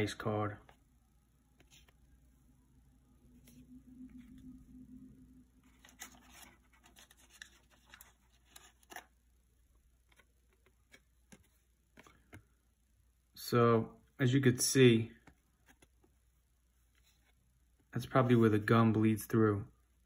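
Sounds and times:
cardboard cards rustling and clicking: 5.6s - 9.2s, 10.0s - 12.6s.

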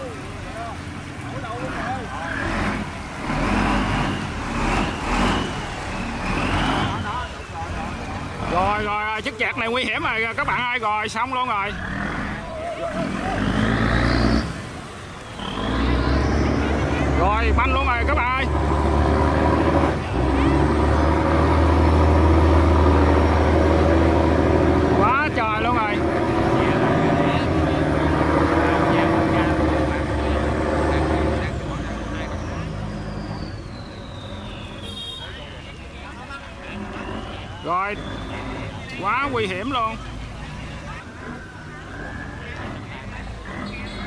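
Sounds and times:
boat diesel engine droning: 0.0s - 44.0s.

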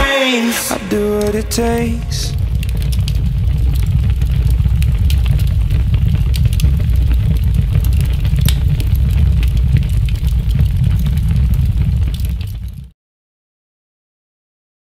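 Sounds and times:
loud low rumble: 0.0s - 5.0s
faint crackles: 2.3s - 12.7s.

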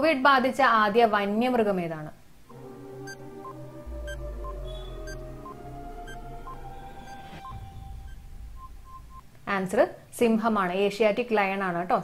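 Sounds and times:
electronic countdown blips: 2.5s - 9.3s
music bed with low rumble: 2.5s - 9.3s.

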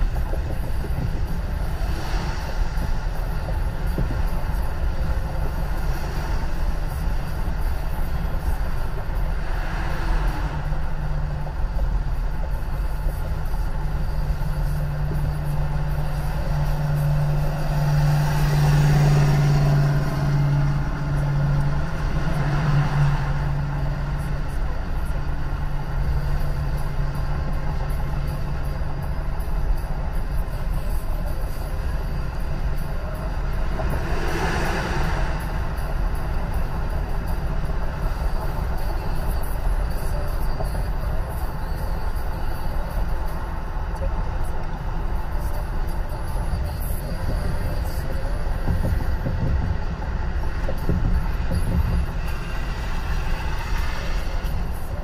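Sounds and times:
passing traffic: 0.0s - 55.0s
road and tyre noise in car: 0.0s - 55.0s.

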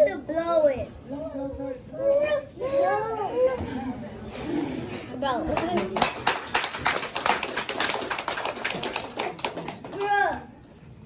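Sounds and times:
group clapping hands: 5.5s - 10.3s.

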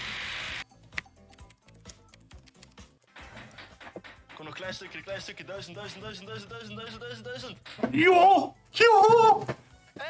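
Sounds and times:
faint game music: 0.0s - 10.0s.

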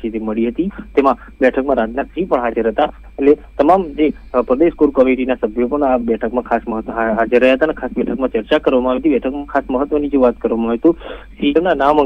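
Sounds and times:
man talking quickly: 0.0s - 12.0s.

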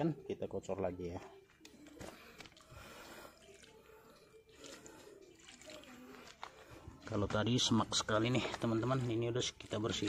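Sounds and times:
liquid trickling into soil: 2.3s - 10.0s.

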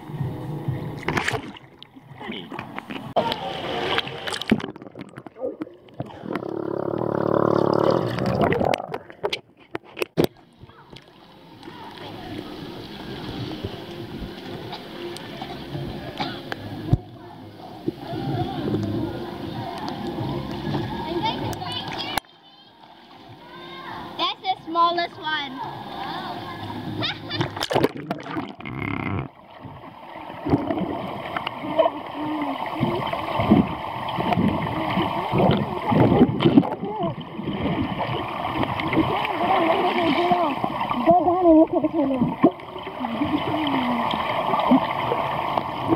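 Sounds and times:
water splashes: 0.8s - 45.9s
child calling underwater: 23.4s - 24.1s, 26.0s - 27.6s, 39.0s - 42.4s, 43.0s - 44.2s.

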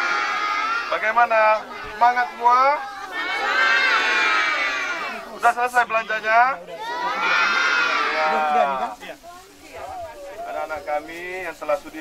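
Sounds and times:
children answering in chorus: 0.0s - 0.9s, 2.8s - 5.2s, 6.8s - 8.8s.

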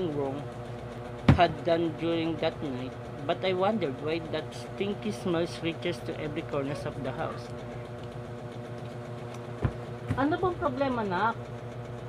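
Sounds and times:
low mechanical motor hum: 0.0s - 12.0s
sharp thump: 1.3s - 1.5s.

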